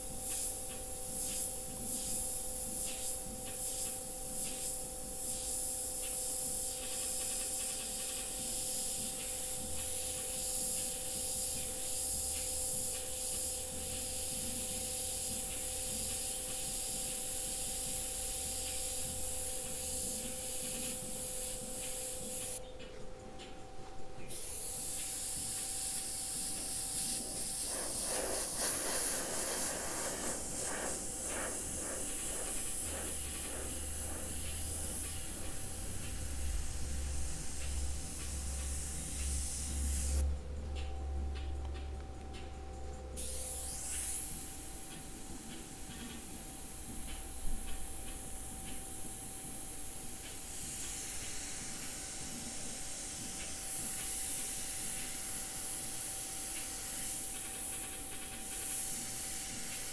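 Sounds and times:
airbrush spraying paint hiss: 0.0s - 22.6s, 24.2s - 41.8s, 43.1s - 59.9s.

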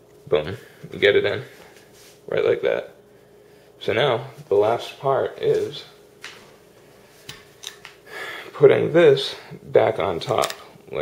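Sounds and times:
metal rifle parts clicking: 10.4s - 10.7s.

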